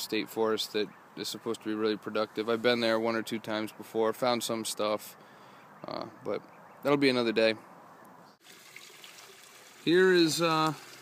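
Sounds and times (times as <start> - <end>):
man speaking: 0.0 - 5.2, 5.8 - 7.6, 9.8 - 10.8
faint outdoor hiss: 0.0 - 11.0.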